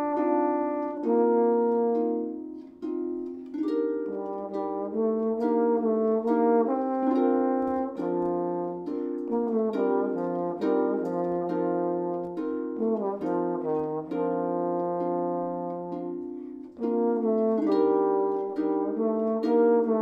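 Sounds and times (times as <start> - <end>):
harp plucking: 0.0 - 20.0
trombone melody: 0.0 - 20.0.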